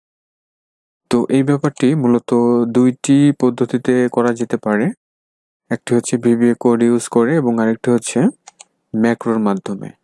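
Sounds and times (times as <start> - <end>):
man narrating: 1.1 - 5.0, 5.7 - 10.0
brief clicks: 8.4 - 8.7.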